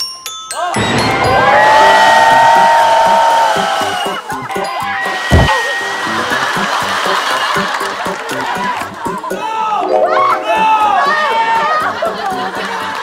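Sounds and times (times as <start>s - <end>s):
group shouting and screaming: 0.7s - 4.3s, 9.3s - 12.1s
background music: 0.7s - 13.0s
low thump: 5.3s - 5.5s.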